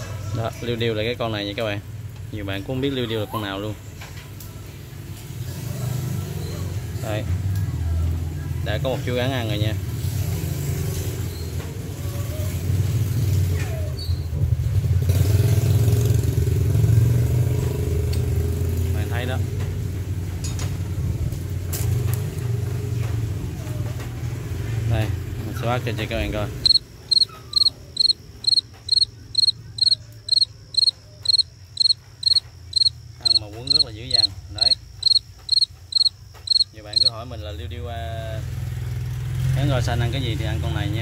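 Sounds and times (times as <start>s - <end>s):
cricket chirping: 25.6s - 39.0s.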